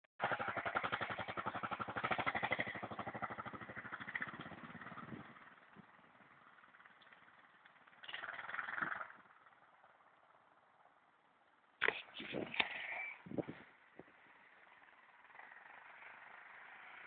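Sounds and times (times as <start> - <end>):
distant motorbike engine revving: 0.2 - 11.0, 11.8 - 17.0
trail bike engine riding away: 0.2 - 17.0.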